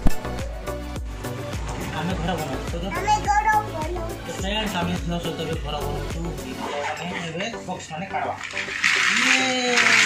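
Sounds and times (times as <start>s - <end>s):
plastic toy blocks clattering: 8.1s - 10.0s.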